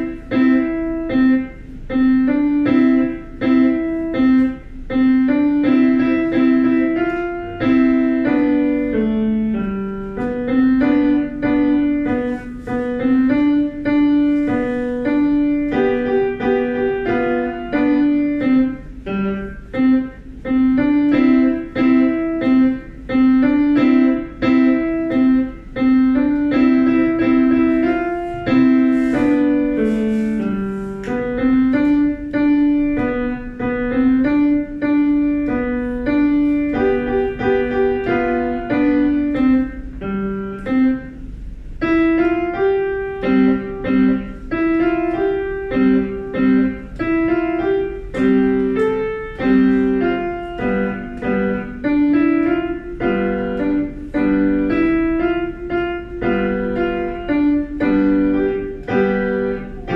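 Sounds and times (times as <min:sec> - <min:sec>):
solo piano tune: 0:00.0 - 0:59.9.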